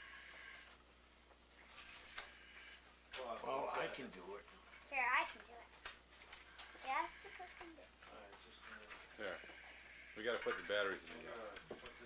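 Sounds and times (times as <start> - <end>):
child-like voice speaking: 4.9 - 5.8, 6.8 - 7.9.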